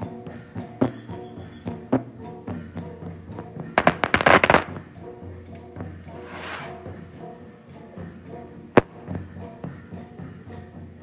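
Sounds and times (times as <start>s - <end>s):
music with steady drum beat: 0.0s - 11.0s
firecrackers popping: 3.8s - 4.8s.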